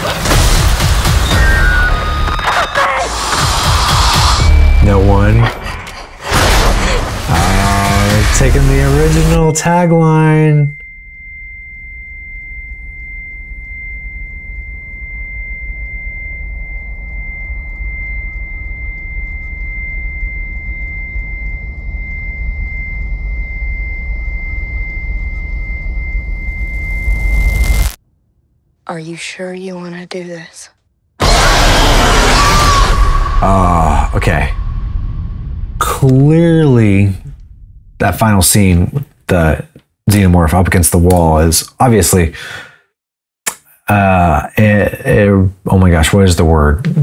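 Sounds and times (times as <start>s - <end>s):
dark film score: 0.0s - 30.3s, 31.2s - 42.0s
person's voice: 7.3s - 10.8s, 33.4s - 34.6s, 35.8s - 37.3s
high-pitched tone: 8.9s - 28.0s
deep rumble: 10.8s - 28.7s, 32.8s - 38.6s
deep droning rumble: 33.1s - 38.3s.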